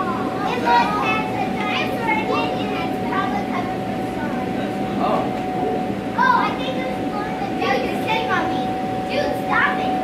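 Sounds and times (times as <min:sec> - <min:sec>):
air blower drone: 0:00.0 - 0:10.0
children chattering: 0:00.0 - 0:10.0.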